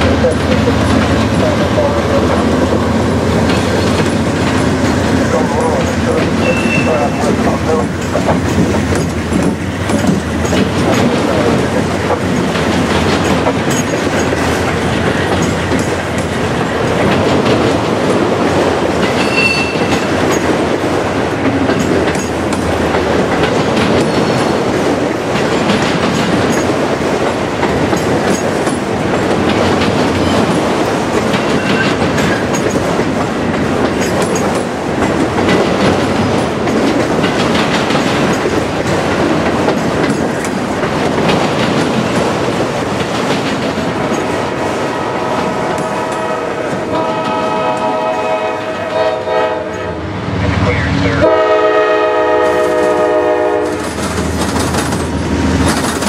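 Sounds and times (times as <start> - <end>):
wheels clacking over rail joints: 0.0 - 49.8, 51.3 - 56.0
freight train rumbling past: 0.0 - 56.0.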